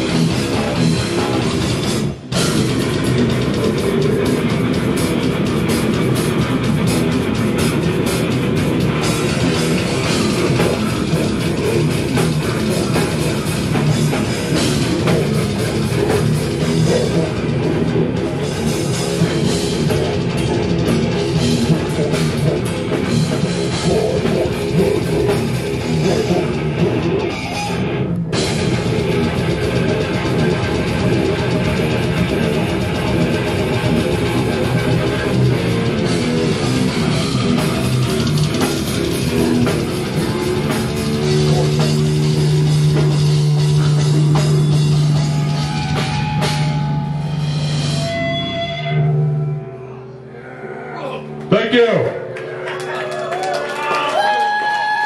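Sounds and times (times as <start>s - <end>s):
death metal band playing: 0.0s - 55.0s.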